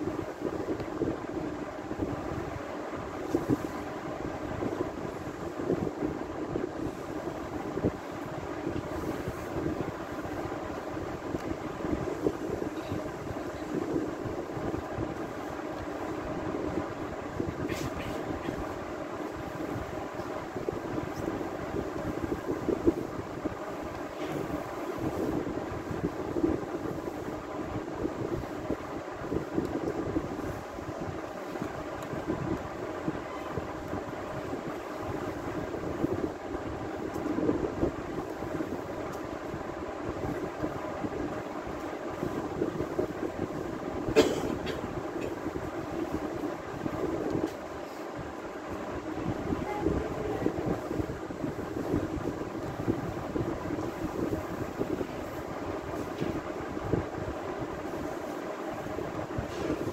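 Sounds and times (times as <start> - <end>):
steady background hum: 0.0 - 59.9.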